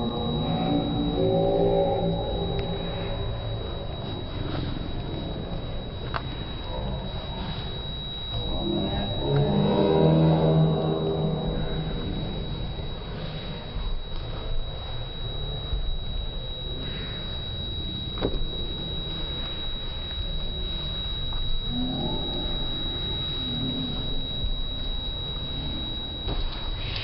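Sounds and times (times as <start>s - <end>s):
deepened drawn-out voices: 0.0s - 13.0s
thin high whine: 0.0s - 27.0s.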